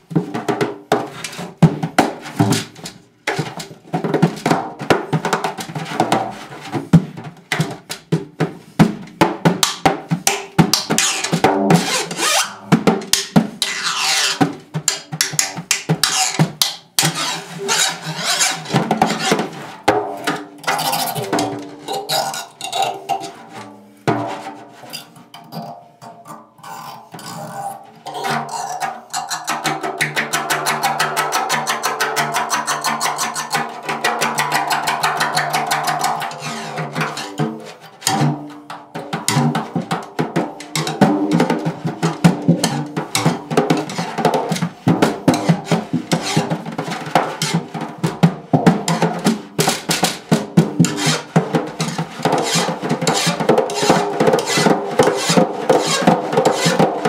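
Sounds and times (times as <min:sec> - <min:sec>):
drum struck and scraped: 0:00.0 - 0:57.0.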